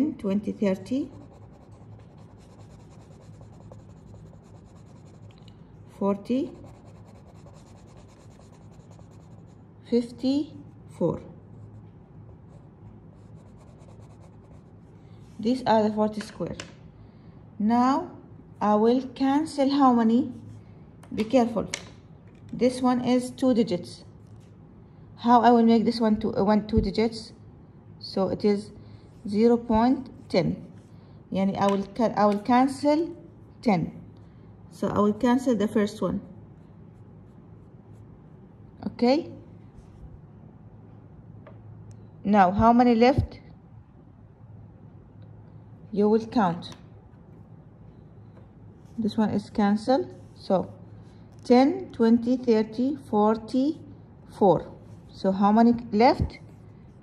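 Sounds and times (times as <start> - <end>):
crayon scribbling on paper: 1.0 - 5.4, 6.4 - 9.6, 13.2 - 14.7.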